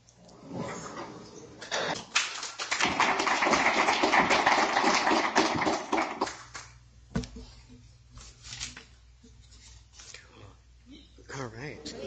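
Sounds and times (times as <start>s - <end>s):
audience applauding: 2.0s - 6.7s.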